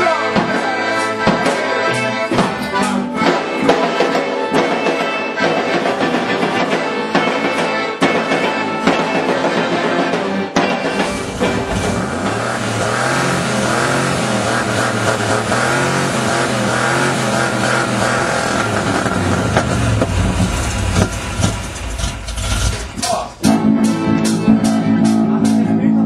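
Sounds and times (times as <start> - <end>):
accordion: 0.0 - 21.5, 23.0 - 26.0
electric guitars: 0.0 - 21.9, 22.6 - 26.0
band music: 0.0 - 26.0
sharp drum hits: 3.2 - 13.4
low rumble: 18.5 - 23.3.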